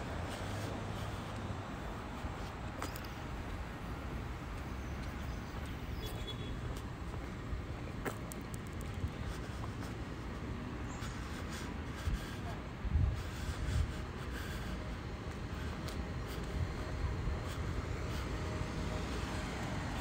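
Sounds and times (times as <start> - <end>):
wind gusts on microphone: 11.9 - 14.1.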